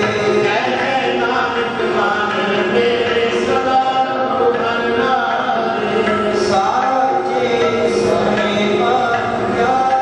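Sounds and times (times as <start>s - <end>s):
steady held notes: 0.0s - 10.0s
voices chanting a hymn: 0.0s - 10.0s.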